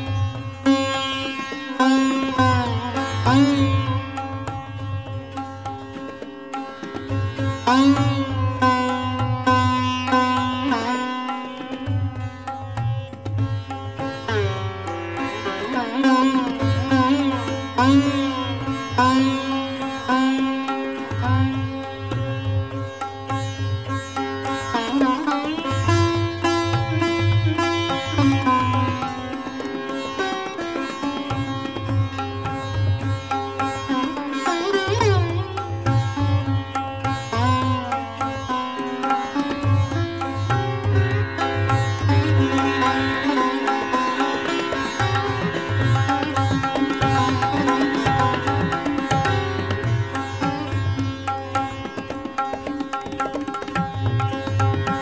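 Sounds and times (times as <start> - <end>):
fast sitar playing: 0.0 - 55.0.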